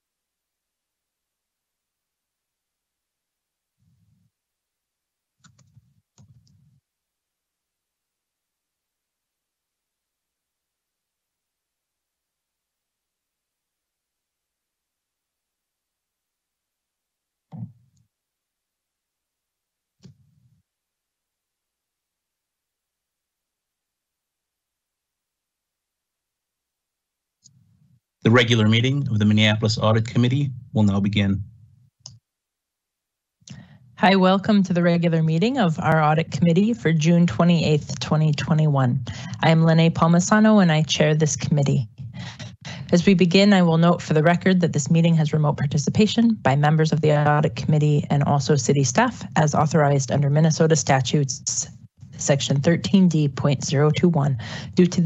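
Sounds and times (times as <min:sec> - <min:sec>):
person speaking: 0:28.3 - 0:31.6, 0:34.0 - 0:55.0.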